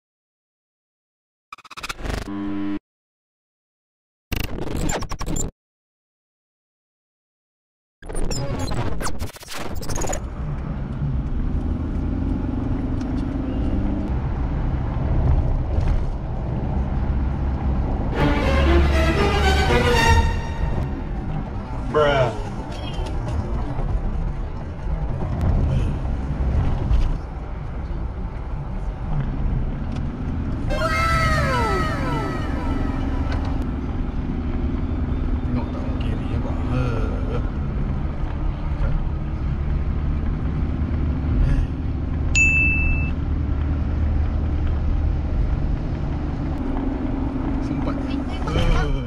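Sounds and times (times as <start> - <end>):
car road and engine rumble: 9.8 - 49.0.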